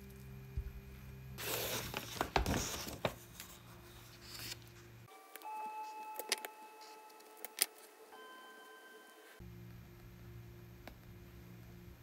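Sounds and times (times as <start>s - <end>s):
paper page rustling: 1.4s - 4.9s
soft bell-like background music: 5.1s - 9.4s.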